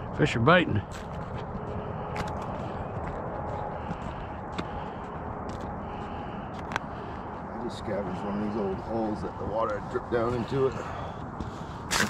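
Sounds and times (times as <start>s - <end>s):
steady outdoor noise: 0.0s - 12.0s.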